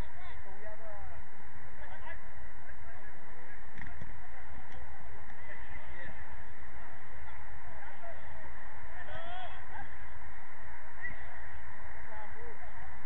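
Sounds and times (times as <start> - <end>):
faint distant calls: 0.0 - 13.0
wind rumbling on microphone: 0.0 - 13.0.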